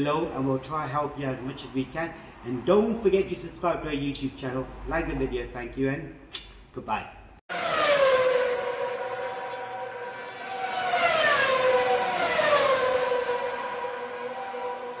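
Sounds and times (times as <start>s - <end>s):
synthesized siren-like sound effect: 7.5s - 15.0s.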